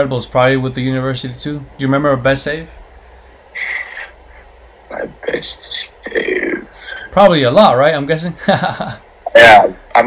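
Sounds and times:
man speaking: 0.0 - 2.8, 4.9 - 10.0.

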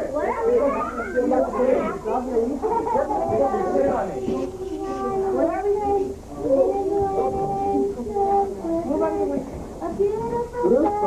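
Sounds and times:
voices singing held notes: 0.0 - 11.0.

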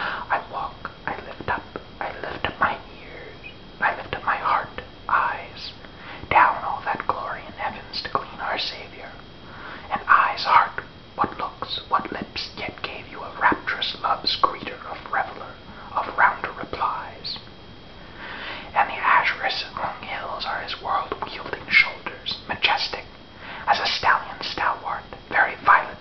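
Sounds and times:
man whispering: 0.2 - 9.2, 9.9 - 17.5, 18.7 - 26.0.

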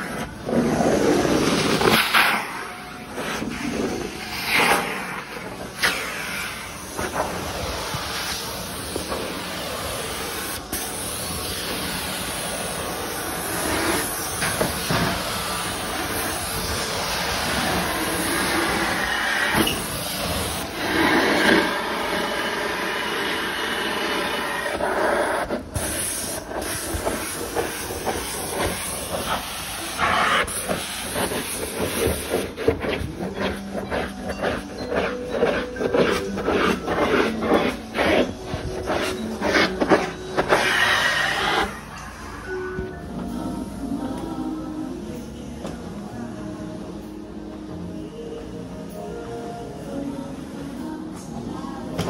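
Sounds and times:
carpet cleaner hissing rush: 0.0 - 42.4.

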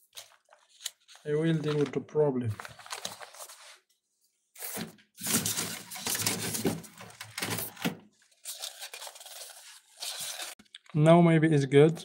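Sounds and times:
plastic sheet and paper rustling: 0.0 - 4.0, 4.6 - 11.0.

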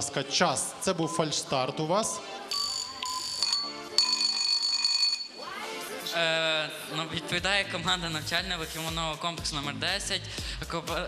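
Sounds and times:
high electronic beeping tones: 2.5 - 5.4.

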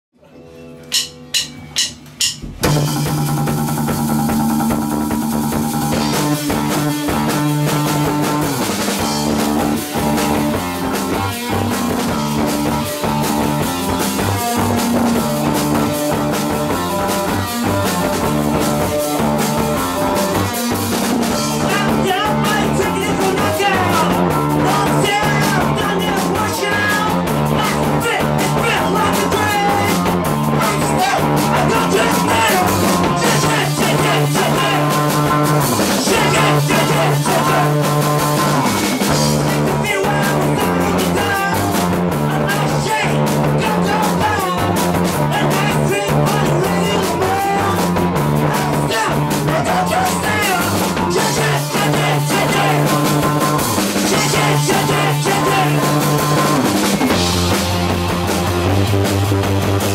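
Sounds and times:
live rock band playing: 0.3 - 59.9
sharp band hits: 0.9 - 2.9.

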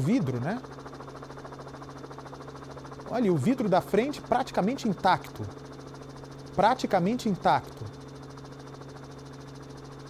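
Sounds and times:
low hum with faint buzz: 0.0 - 10.0.

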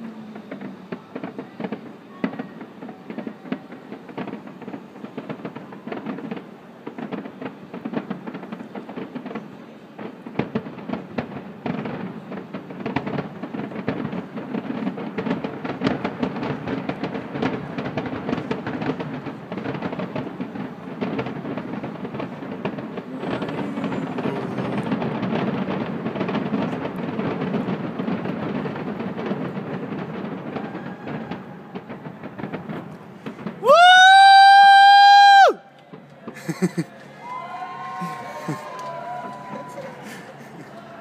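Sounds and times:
fireworks popping and crackling: 0.0 - 41.0.

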